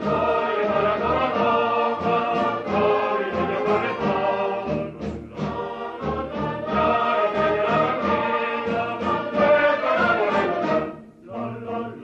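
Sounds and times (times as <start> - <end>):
choir singing sustained notes: 0.0 - 12.0.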